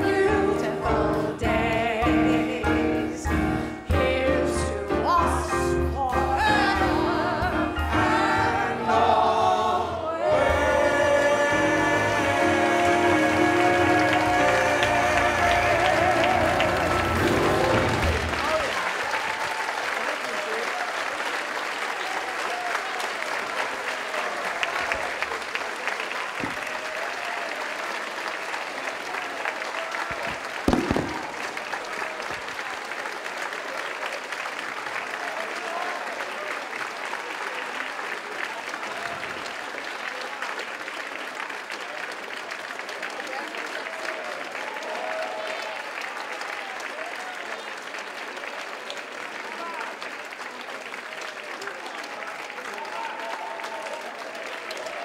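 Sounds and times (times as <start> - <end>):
audience applauding: 6.0 - 55.0.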